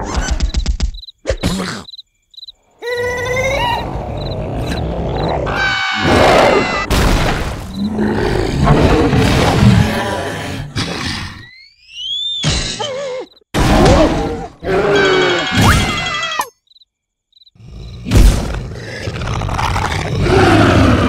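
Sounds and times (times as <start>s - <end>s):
cartoon character screaming: 13.8s - 16.5s.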